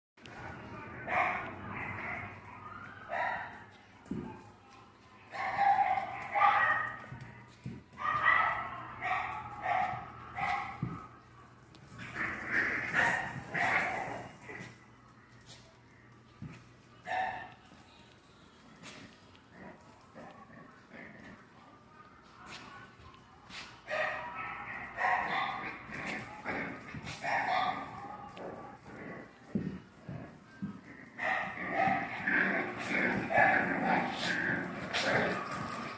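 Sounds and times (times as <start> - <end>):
puppies yapping and growling: 24.0 - 35.9.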